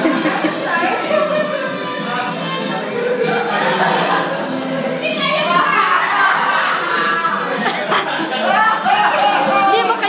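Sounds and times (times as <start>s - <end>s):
group of people singing: 0.0s - 9.6s.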